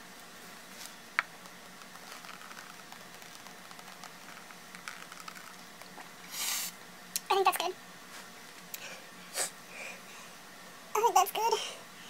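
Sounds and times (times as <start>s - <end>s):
droplets pattering on paper: 1.2s - 6.1s.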